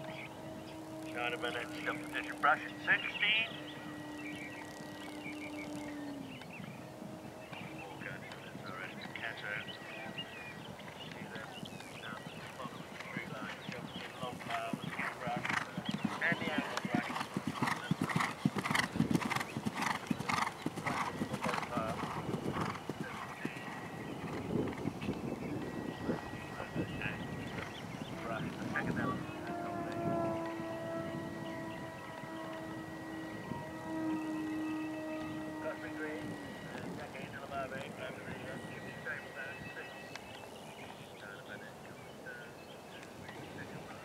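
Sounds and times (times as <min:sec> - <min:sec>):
horse galloping on turf: 0:10.5 - 0:25.9.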